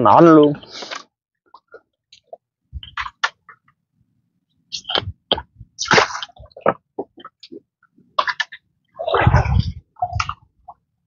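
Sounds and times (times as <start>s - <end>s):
muddy water splashing: 4.8s - 7.6s, 8.2s - 10.8s.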